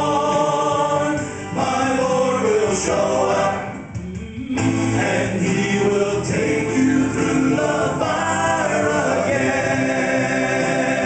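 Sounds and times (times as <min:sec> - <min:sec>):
male quartet singing in harmony: 0:00.0 - 0:11.0.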